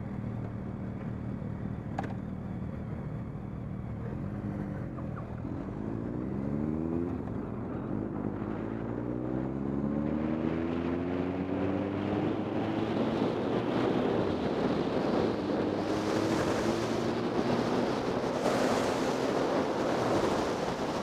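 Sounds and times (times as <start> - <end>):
motorcycle engine accelerating: 3.8 - 21.0
wind rush: 11.4 - 21.0.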